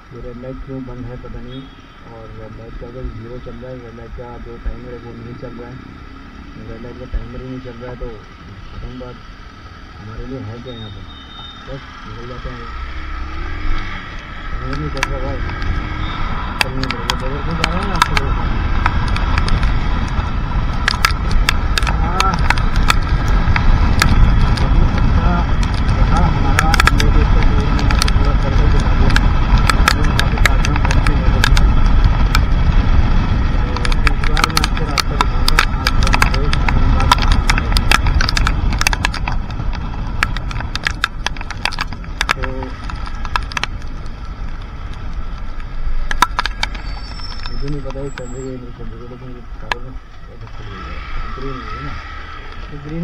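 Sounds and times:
wind rushing over microphone: 0:11.8 - 0:48.8
raindrops ticking on camera: 0:14.0 - 0:50.0.

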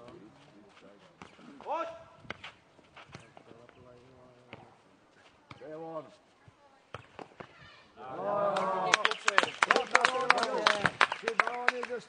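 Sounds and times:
ball kicked and bouncing: 0:01.2 - 0:03.5, 0:05.4 - 0:05.8, 0:06.4 - 0:07.7.

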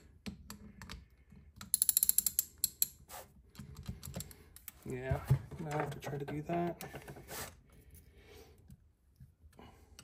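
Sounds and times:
ratchet wrench clicking: 0:01.6 - 0:03.0.

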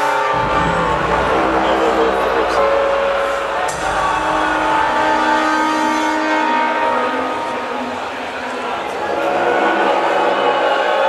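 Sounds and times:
long held chord notes: 0:00.0 - 0:09.4
live symphonic black metal band: 0:00.0 - 0:11.0.

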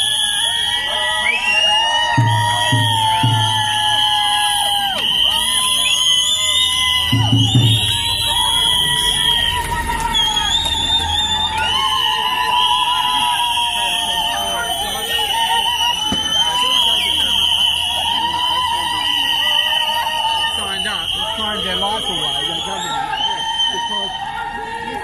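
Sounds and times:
crowd noise: 0:00.0 - 0:25.0.

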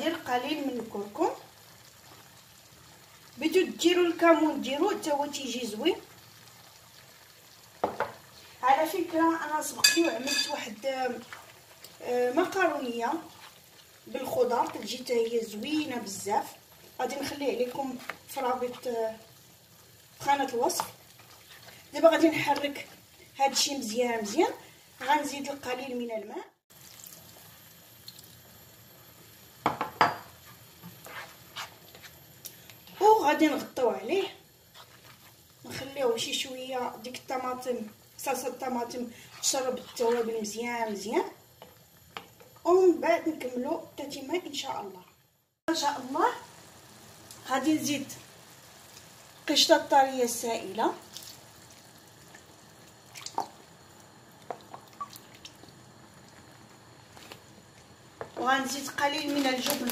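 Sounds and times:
spatula stirring sauce in pan: 0:09.8 - 0:23.3, 0:30.2 - 0:32.3, 0:34.6 - 0:35.6, 0:38.4 - 0:40.6
cream plopping and dripping: 0:26.7 - 0:28.4, 0:51.0 - 0:58.4.

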